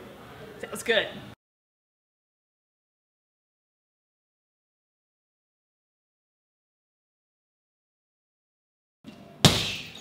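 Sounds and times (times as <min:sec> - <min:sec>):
kick on heavy punching bag: 0:09.4 - 0:09.9.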